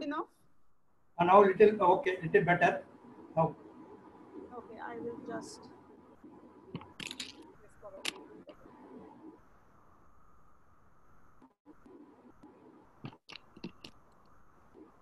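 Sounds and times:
earbud cable clicks and rubbing: 0:06.7 - 0:08.3, 0:13.0 - 0:14.3.

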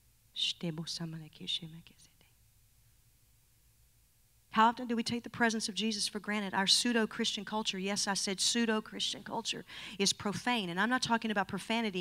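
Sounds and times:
woman speaking into a microphone: 0:00.4 - 0:02.1, 0:04.6 - 0:12.0.

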